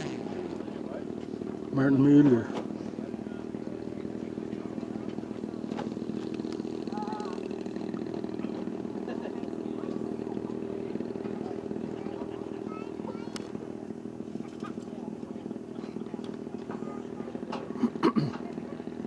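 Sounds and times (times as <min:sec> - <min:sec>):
model plane engine droning: 0:00.0 - 0:19.0.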